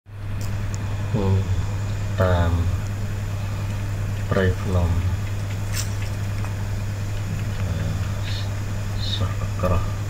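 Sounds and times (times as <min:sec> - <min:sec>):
steady low hum: 0:00.1 - 0:10.0.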